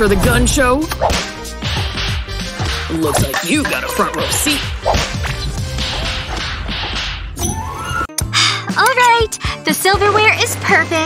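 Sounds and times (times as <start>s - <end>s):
sharp swishing effects: 3.1s - 7.4s.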